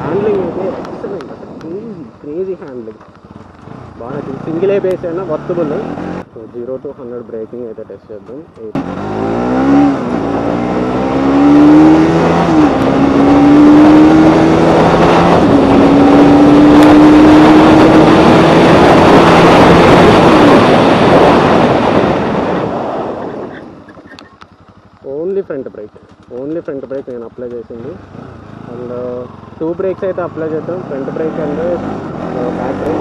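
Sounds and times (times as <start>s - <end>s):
motorcycle engine accelerating: 0.0s - 7.3s, 8.2s - 33.0s
wind rush on microphone: 11.5s - 24.2s.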